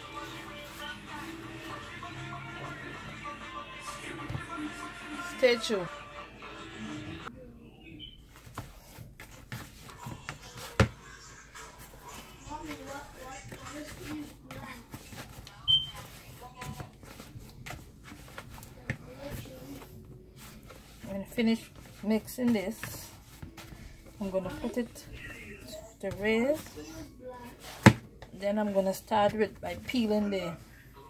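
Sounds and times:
hands kneading dough in a bowl: 8.4s - 30.8s.

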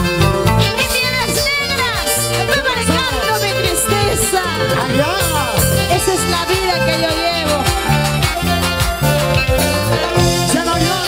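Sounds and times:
live folk band playing: 0.0s - 11.0s
steady bass beat: 0.0s - 11.0s.

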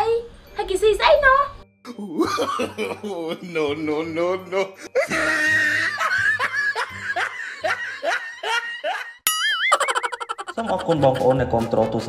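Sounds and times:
music: 0.0s - 9.1s, 10.5s - 12.0s
laughter: 2.1s - 4.3s, 5.0s - 11.7s.

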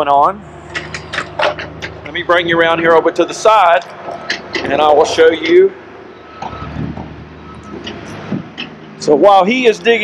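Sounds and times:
diesel excavator engine rumbling: 0.0s - 10.0s.

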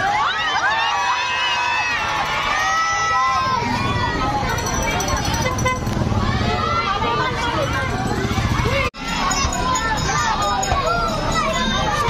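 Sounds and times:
crowd chattering and calling out: 0.0s - 12.0s.

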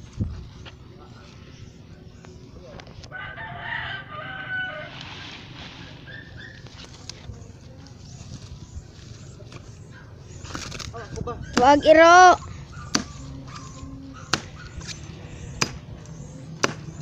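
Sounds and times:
rooster crowing: 3.1s - 5.0s.

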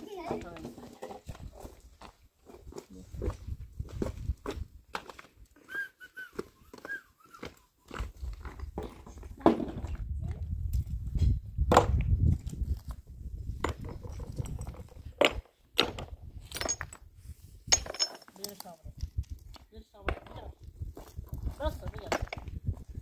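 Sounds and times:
stones clacking together: 13.5s - 17.1s, 17.7s - 22.8s.

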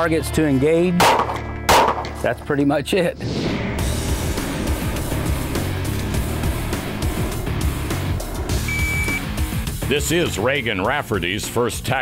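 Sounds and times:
background music: 0.0s - 12.0s
brief high beep: 8.6s - 9.3s.

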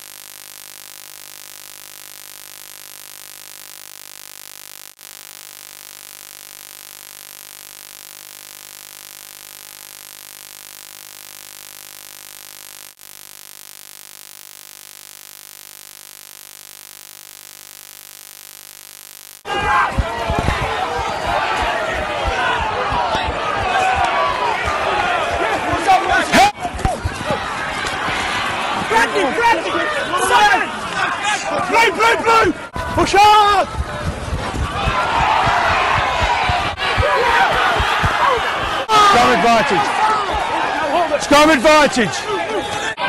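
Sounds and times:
electrical hum and hiss: 0.0s - 19.4s
faint buzzing tones: 0.0s - 19.4s.

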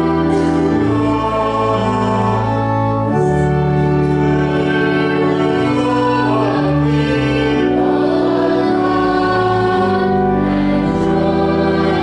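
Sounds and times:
church organ chords: 0.0s - 12.0s
congregation singing a hymn: 0.0s - 12.0s.

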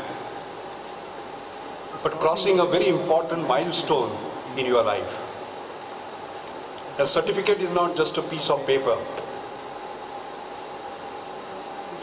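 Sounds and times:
faint high hum: 0.0s - 12.0s
sound system hiss: 0.0s - 12.0s.

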